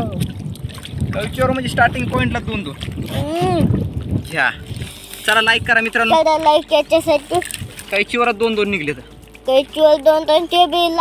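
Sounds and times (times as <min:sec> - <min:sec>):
wind noise on microphone: 0:00.0 - 0:09.0.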